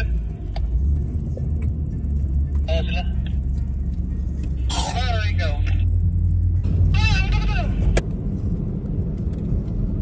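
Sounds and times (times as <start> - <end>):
voice: 2.7 - 3.3, 4.7 - 5.8, 6.9 - 7.9.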